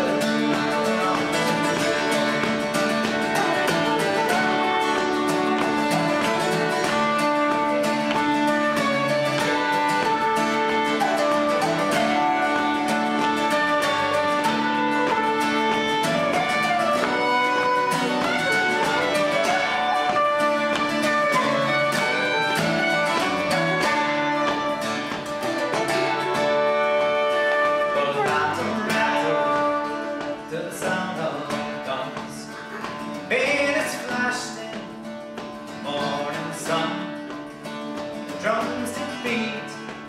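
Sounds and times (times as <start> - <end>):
wooden flute: 0.0 - 31.1
fiddle: 0.0 - 40.0
strummed chords: 0.0 - 40.0.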